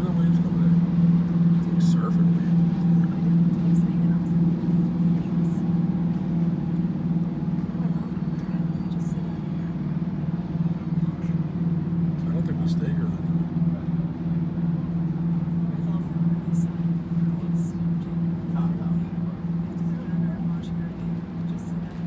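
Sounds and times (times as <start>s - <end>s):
ship machinery drone: 0.0s - 22.0s.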